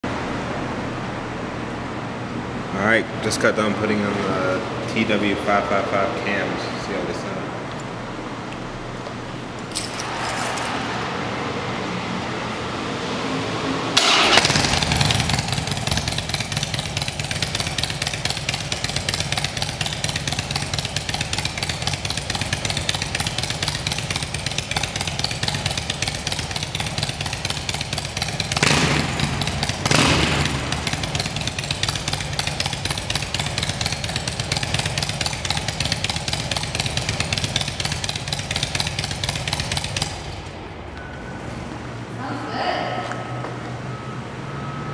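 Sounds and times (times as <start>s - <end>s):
motorcycle engine revving: 10.0s - 40.6s
motorcycle engine idling: 14.0s - 41.3s.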